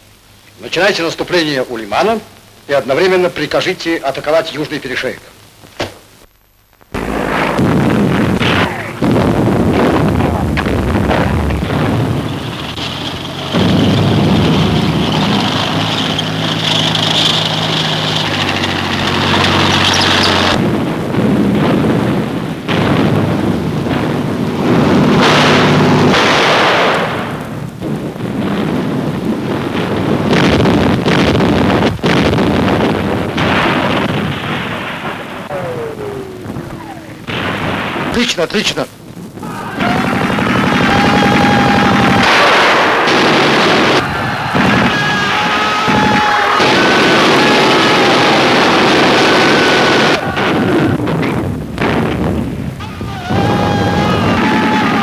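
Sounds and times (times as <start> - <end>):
explosions and impacts: 6.9 - 55.0.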